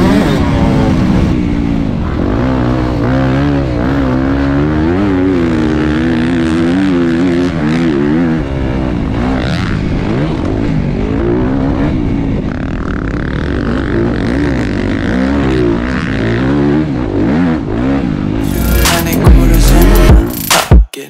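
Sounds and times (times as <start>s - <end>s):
motocross bike engine revving: 0.0s - 20.6s.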